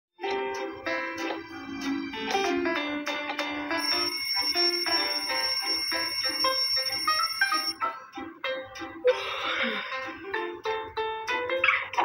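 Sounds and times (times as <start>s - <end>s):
background music: 0.2s - 12.0s
alarm clock ringing: 3.6s - 7.8s.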